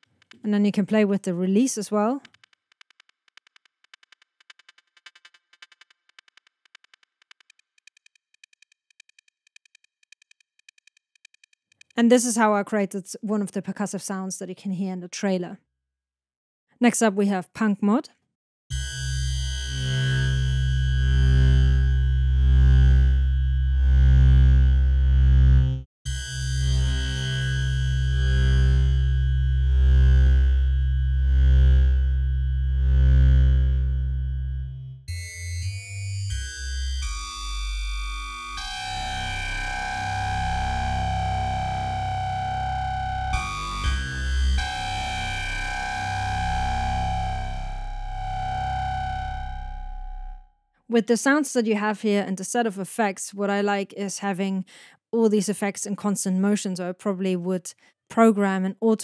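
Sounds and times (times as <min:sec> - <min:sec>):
synthesizer chords and notes: 0:18.7 - 0:50.4.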